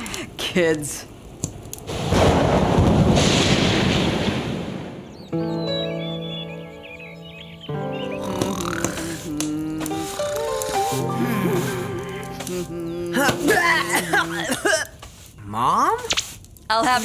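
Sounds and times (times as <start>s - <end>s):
wind: 0.0s - 8.2s
thunder rolling: 1.8s - 5.5s
heavy rain: 1.9s - 5.0s
high chirps: 5.0s - 14.0s
soft sustained music chords: 9.0s - 14.2s.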